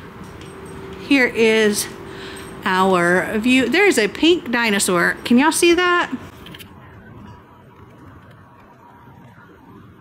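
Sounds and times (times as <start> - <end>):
low city background rumble: 0.0 - 10.0.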